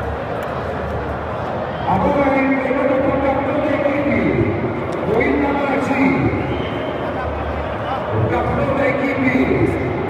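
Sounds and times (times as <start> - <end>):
murmur of people: 0.0 - 10.0
man talking with echo: 1.9 - 6.6, 7.2 - 10.0.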